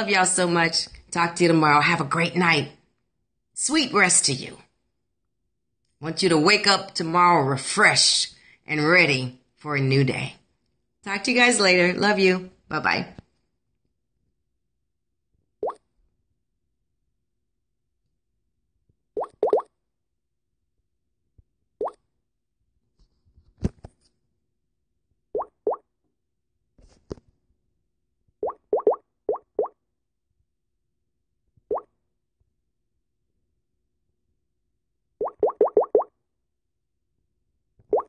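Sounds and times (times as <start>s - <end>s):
short rising plopping sounds: 19.2s - 19.7s, 28.4s - 29.8s, 35.2s - 36.1s.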